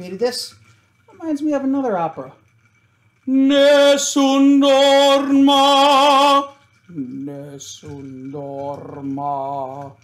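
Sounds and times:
man singing operatic notes: 3.3s - 8.0s.

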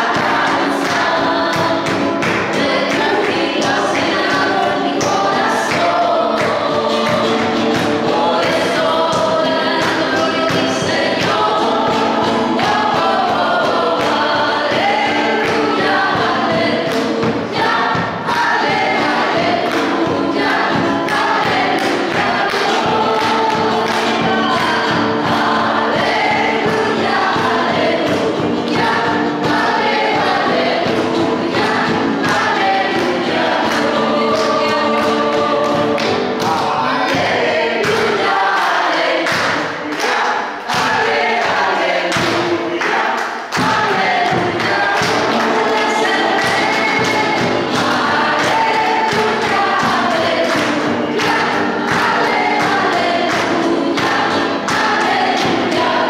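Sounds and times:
group singing worship song: 0.0s - 56.0s.

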